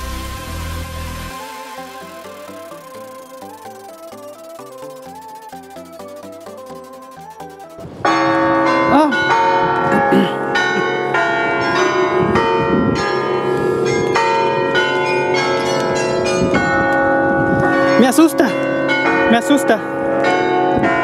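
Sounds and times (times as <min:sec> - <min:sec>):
carillon bells playing a tune: 0:01.1 - 0:21.0.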